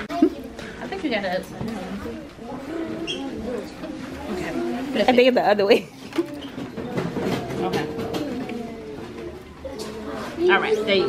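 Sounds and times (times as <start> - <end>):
children's voices humming: 7.2 - 10.4.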